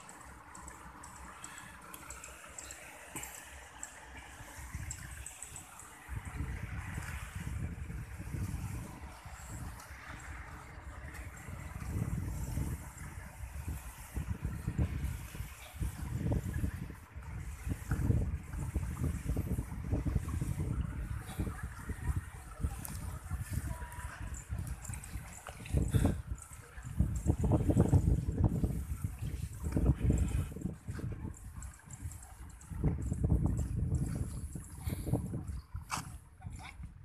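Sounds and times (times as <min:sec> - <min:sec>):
wind buffeting microphone: 0:00.0 - 0:37.0.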